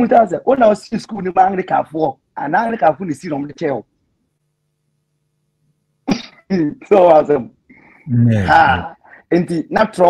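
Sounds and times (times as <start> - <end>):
man clearing throat: 8.1 - 9.0
man speaking: 8.1 - 9.0
man coughing: 8.3 - 8.9.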